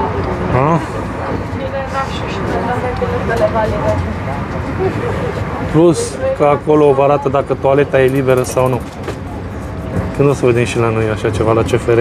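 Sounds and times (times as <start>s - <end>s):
faint voices talking: 0.0s - 12.0s
train rumble inside carriage: 0.0s - 12.0s.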